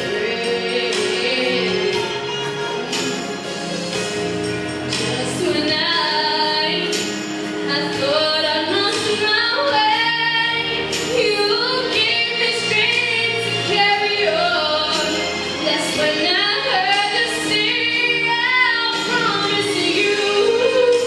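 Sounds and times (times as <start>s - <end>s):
woman singing into microphone: 0.0s - 3.5s, 4.9s - 21.0s
instrumental accompaniment: 0.0s - 21.0s.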